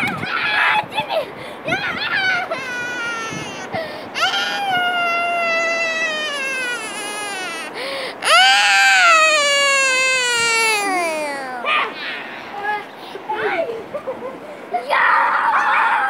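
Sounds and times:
child wailing: 1.7s - 12.8s.

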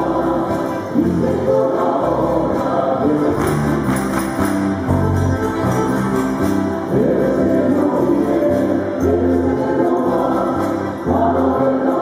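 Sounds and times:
accordion: 0.0s - 12.0s
group singing folk music: 0.0s - 12.0s
guitar: 0.0s - 12.0s
hand claps: 3.2s - 6.7s.

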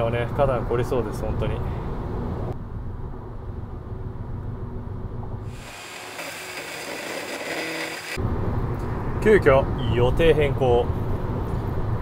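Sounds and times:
road and wind hiss: 0.0s - 5.6s, 8.2s - 12.0s.

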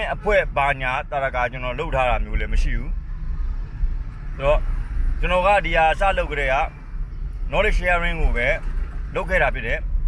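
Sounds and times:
man talking: 0.0s - 3.0s, 4.4s - 6.7s, 7.5s - 9.9s.

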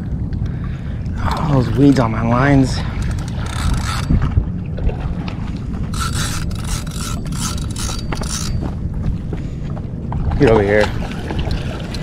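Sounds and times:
low wind rumble: 0.0s - 12.0s.

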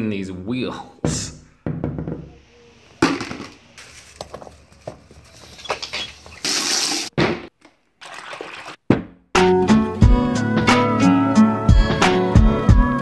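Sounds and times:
water sloshing in plastic bucket: 8.0s - 8.9s.

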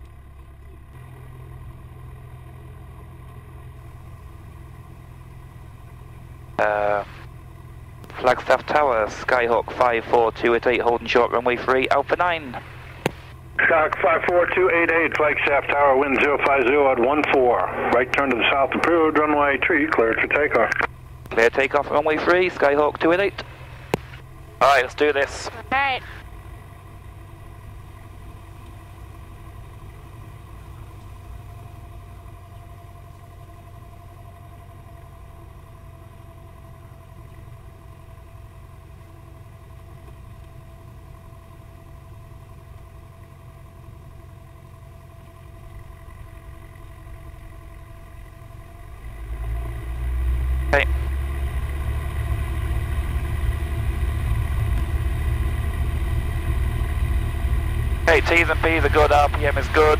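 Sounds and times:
light aircraft engine and propeller: 0.0s - 59.9s.

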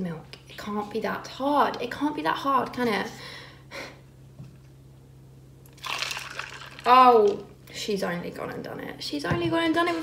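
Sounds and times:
faint steady hum: 0.0s - 10.0s
coffee splashing into a cup: 5.7s - 7.5s.

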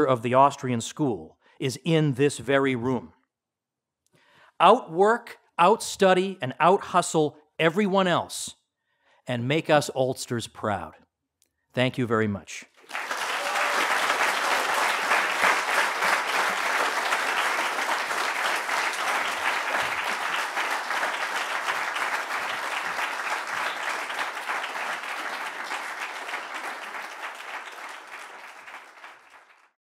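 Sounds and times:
audience applauding: 12.8s - 29.8s.

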